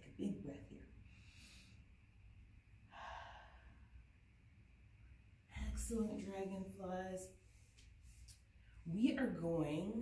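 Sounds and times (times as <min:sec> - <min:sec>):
faint low room hum: 0:00.0 - 0:10.0
breathy sigh: 0:02.9 - 0:03.9.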